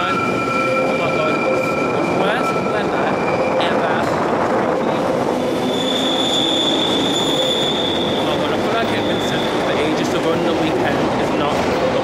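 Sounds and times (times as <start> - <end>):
train wheels squealing on rails: 0.0 - 4.2, 4.9 - 10.7
train running noise: 0.0 - 12.0.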